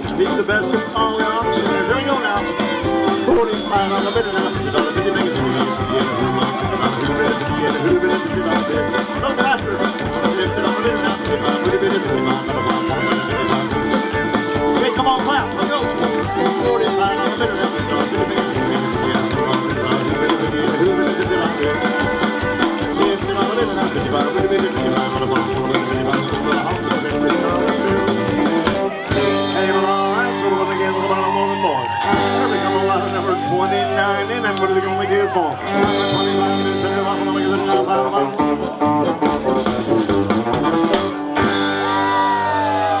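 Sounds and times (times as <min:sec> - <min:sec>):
live country band playing: 0:00.0 - 0:43.0.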